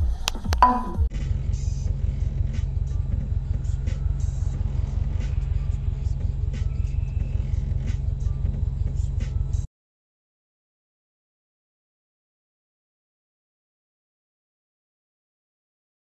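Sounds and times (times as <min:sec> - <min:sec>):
car engine idling: 0:03.2 - 0:09.2.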